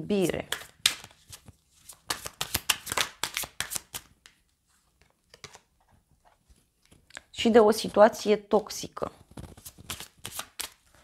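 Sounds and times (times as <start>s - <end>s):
cards shuffling: 0.2s - 4.4s, 9.2s - 11.0s.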